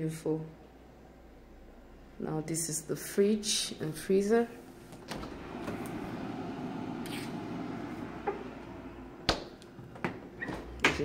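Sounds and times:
open freezer rushing noise: 0:04.8 - 0:10.9.

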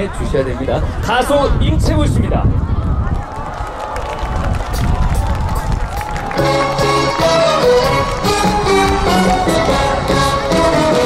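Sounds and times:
audience cheering and clapping: 0:02.8 - 0:11.0
live band playing: 0:05.6 - 0:11.0.

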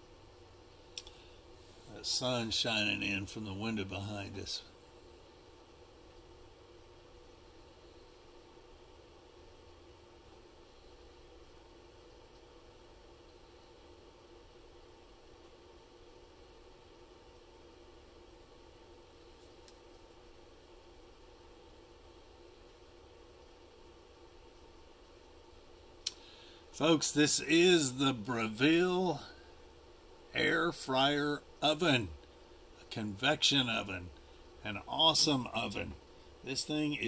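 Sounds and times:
air fryer oven humming: 0:00.0 - 0:30.7.

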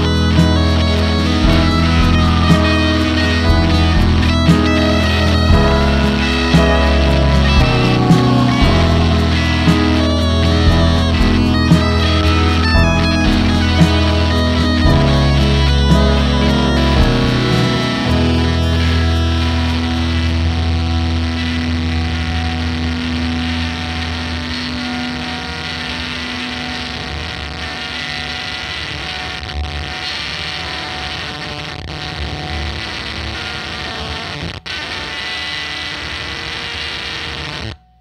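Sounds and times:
distorted electric guitar chord: 0:00.0 - 0:38.0
effects-laden guitar noise: 0:00.0 - 0:38.0.

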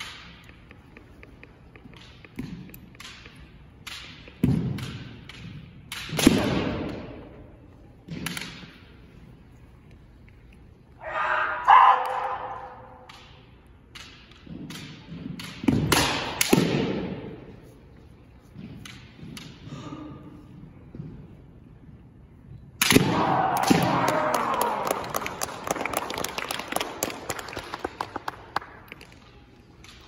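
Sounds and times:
loud shout: 0:11.0 - 0:13.0, 0:23.0 - 0:25.4.

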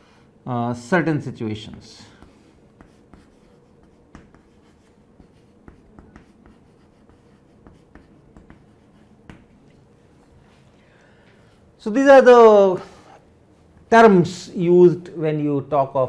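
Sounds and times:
chalk tapping on chalkboard: 0:02.1 - 0:09.8.

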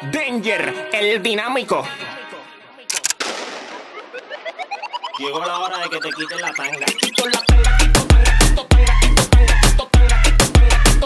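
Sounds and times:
gunshot sound effects: 0:03.2 - 0:04.5
vocal dance track: 0:04.6 - 0:11.0.

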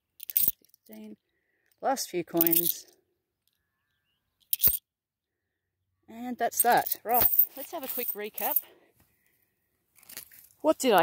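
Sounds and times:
coins clinking together: 0:00.2 - 0:00.6, 0:02.4 - 0:02.8, 0:04.5 - 0:04.8, 0:06.6 - 0:08.7.

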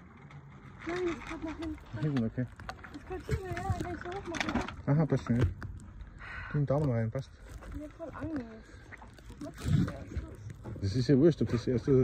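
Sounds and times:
people talking: 0:03.0 - 0:04.6.

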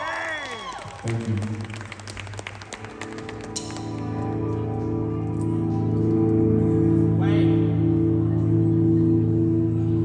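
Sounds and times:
crowd clapping: 0:00.0 - 0:04.7.

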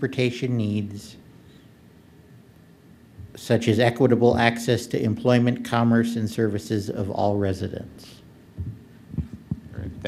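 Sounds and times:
microphone handling thumps: 0:03.2 - 0:03.4, 0:08.6 - 0:10.0.

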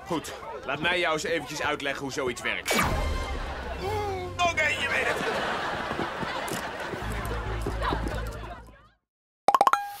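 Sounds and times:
electronic jingle with popping notes: 0:09.5 - 0:10.0.

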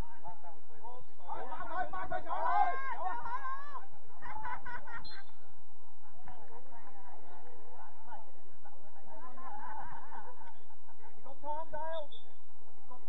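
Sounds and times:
voices calling out: 0:00.0 - 0:05.6.

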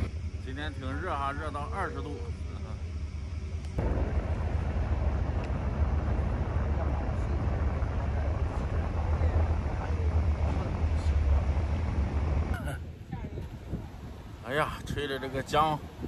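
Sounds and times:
wind buffeting microphone: 0:03.4 - 0:16.0.

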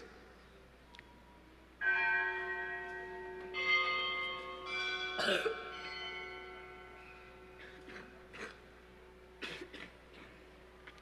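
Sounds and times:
bell ringing: 0:01.8 - 0:07.6
person coughing: 0:05.2 - 0:05.6, 0:07.6 - 0:08.6, 0:09.4 - 0:10.4.

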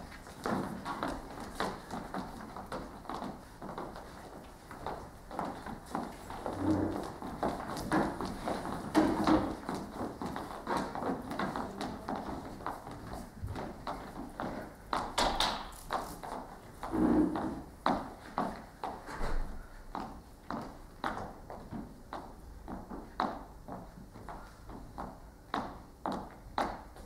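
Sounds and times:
footsteps on wooden stage: 0:00.0 - 0:27.0.

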